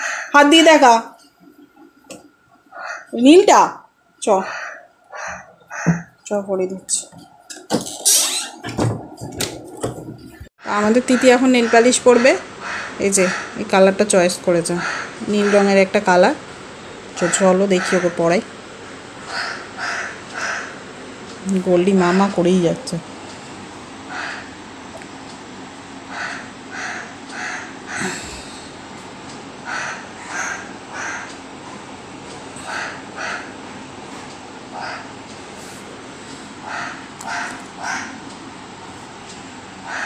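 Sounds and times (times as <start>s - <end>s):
crow cawing: 0.0s - 0.4s, 4.4s - 6.1s, 11.2s - 13.6s, 14.8s - 15.6s, 19.2s - 20.8s, 24.1s - 24.5s, 26.1s - 28.5s, 29.6s - 31.4s, 32.6s - 33.6s, 36.6s - 38.2s.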